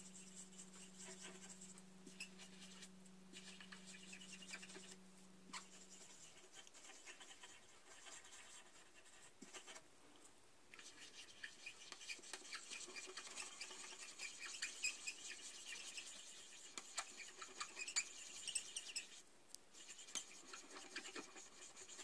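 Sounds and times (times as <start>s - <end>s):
marker scratching on plastic: 0.0s - 9.8s, 10.8s - 22.0s.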